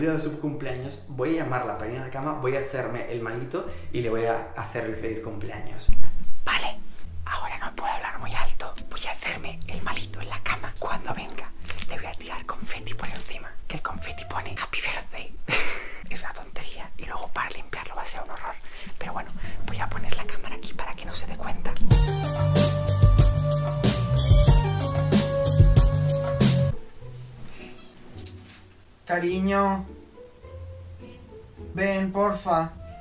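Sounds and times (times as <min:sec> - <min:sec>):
background music: 0:00.0 - 0:05.7, 0:06.5 - 0:33.0
man whispering: 0:05.8 - 0:15.4, 0:16.1 - 0:21.9.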